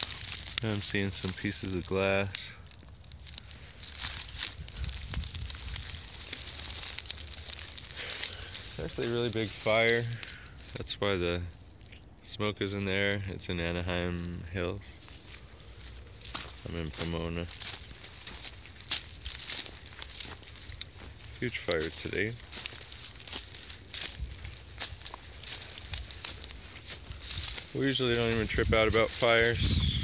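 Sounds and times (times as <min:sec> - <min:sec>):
footsteps crunching through straw: 0:00.0 - 0:12.0, 0:13.8 - 0:30.0
steady low rumble: 0:00.0 - 0:30.0.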